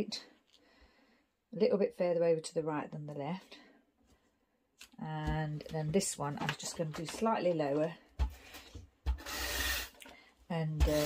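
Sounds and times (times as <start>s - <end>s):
tape dispenser stroke: 9.2s - 10.0s.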